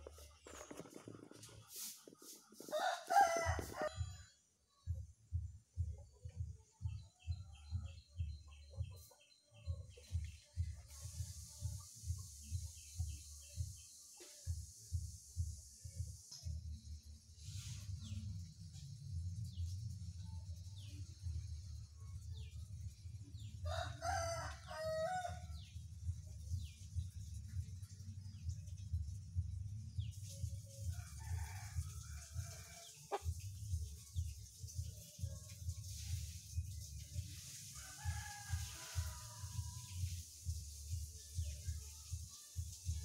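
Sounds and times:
rooster crowing: 2.7s - 4.4s, 23.7s - 25.5s, 37.8s - 39.7s
steady low rumble: 4.8s - 13.8s, 25.4s - 30.1s.

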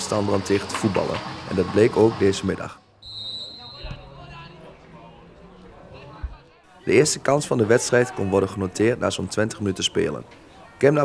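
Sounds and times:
referee's whistle: 3.0s - 4.4s.

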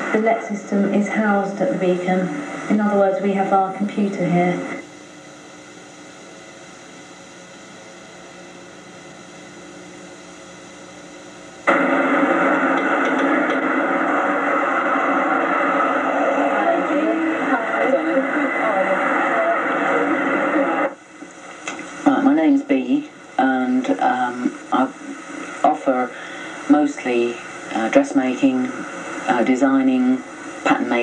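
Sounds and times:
faint steady hiss: 0.0s - 31.0s
loud hissy noise: 0.0s - 31.0s
indistinct voices: 11.7s - 21.0s.

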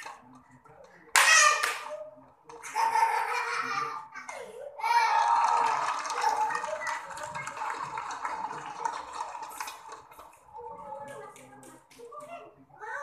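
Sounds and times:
people shouting and laughing: 1.1s - 11.0s.

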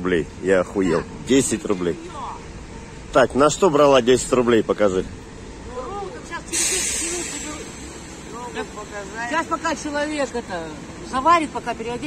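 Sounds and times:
sudden loud hiss: 6.5s - 8.4s.

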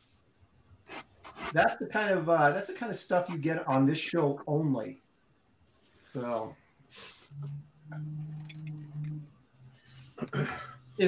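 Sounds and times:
man humming hesitantly: 7.3s - 9.4s.

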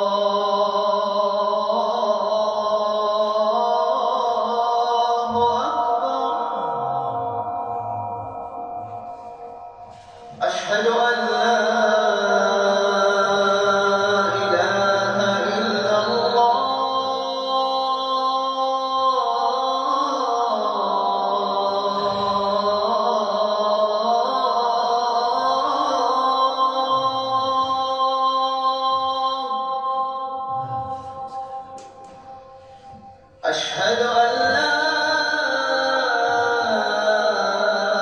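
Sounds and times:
man chanting melodic recitation: 0.0s - 38.0s.

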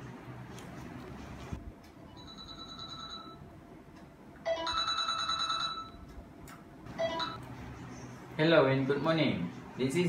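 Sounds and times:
desk telephone ringing: 2.1s - 3.4s, 4.5s - 6.0s, 7.0s - 7.4s.

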